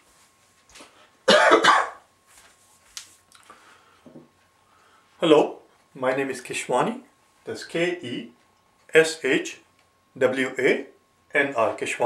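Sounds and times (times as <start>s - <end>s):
person coughing: 1.3s - 2.0s.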